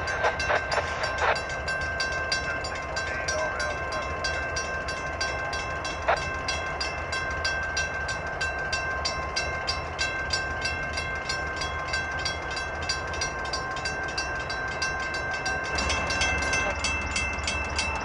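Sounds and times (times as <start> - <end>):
diesel locomotive engines rumbling: 0.0 - 18.0
high whine: 0.0 - 18.0
regular clicking of train wheels: 0.0 - 18.0.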